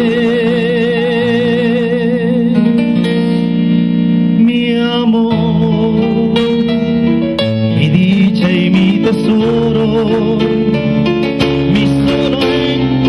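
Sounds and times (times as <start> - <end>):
man singing: 0.0 - 3.0, 4.3 - 13.0.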